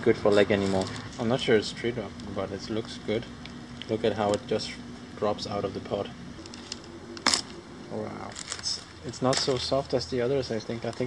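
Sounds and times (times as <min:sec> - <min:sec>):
husk tearing crack: 0:06.4 - 0:07.6, 0:08.2 - 0:09.6, 0:10.8 - 0:11.0.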